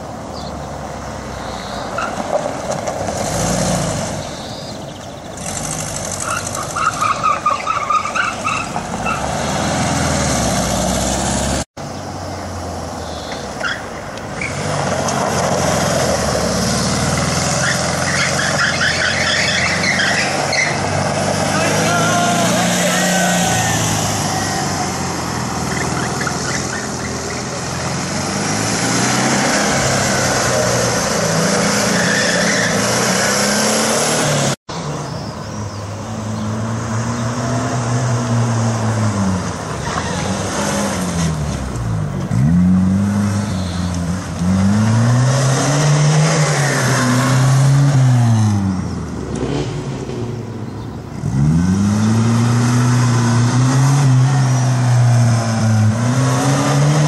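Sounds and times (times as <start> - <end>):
car engine revving: 14.4 - 34.9, 36.0 - 57.0.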